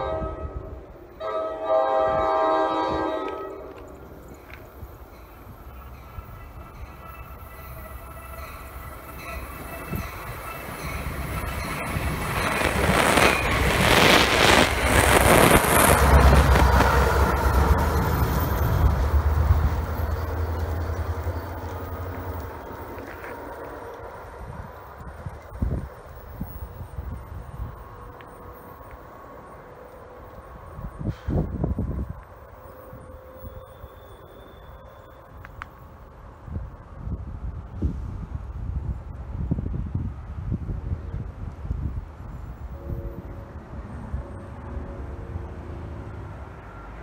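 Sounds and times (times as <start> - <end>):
train horn blasts: 0.0 - 3.9, 6.6 - 11.6, 42.6 - 47.0
diesel locomotive drone: 0.0 - 47.0
train rumbling on rails: 0.0 - 47.0.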